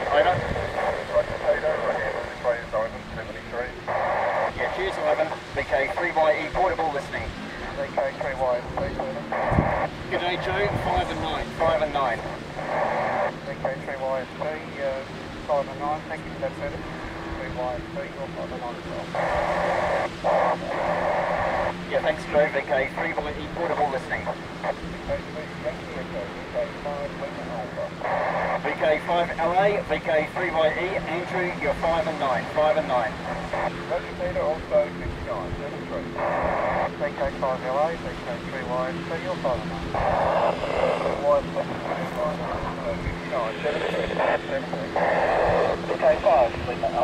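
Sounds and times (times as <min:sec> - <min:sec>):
distorted radio voices: 0:00.0 - 0:47.0
fm radio hiss: 0:00.0 - 0:47.0.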